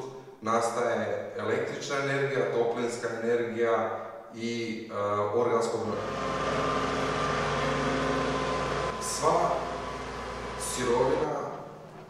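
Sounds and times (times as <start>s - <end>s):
thin steady whine: 5.9s - 12.0s
tractor diesel engine running: 5.9s - 12.0s.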